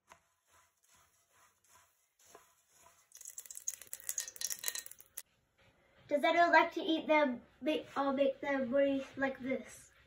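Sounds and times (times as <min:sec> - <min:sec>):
puffed rice rattling in metal pot: 0:03.1 - 0:05.2.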